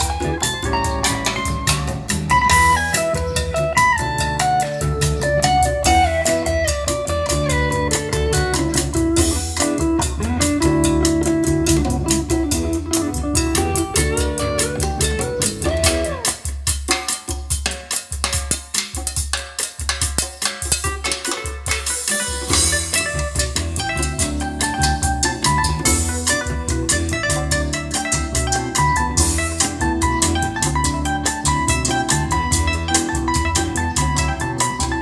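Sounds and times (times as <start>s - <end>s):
music through speakers: 0.0s - 35.0s.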